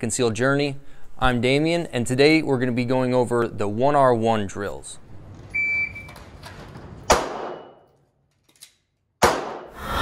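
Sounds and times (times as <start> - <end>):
handgun shot: 7.1 - 7.8, 9.2 - 9.8.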